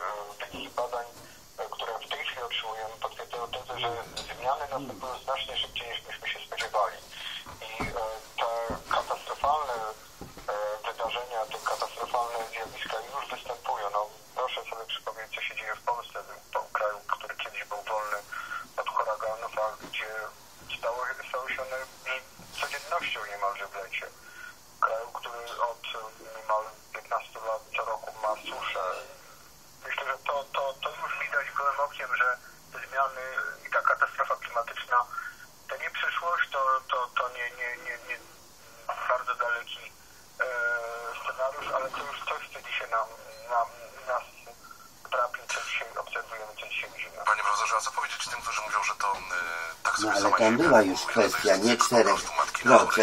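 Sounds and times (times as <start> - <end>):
voice talking over radio: 0.0 - 24.2, 24.8 - 53.0.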